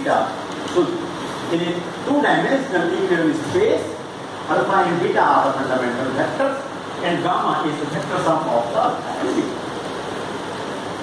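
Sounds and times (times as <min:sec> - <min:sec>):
room background hiss: 0:00.0 - 0:11.0.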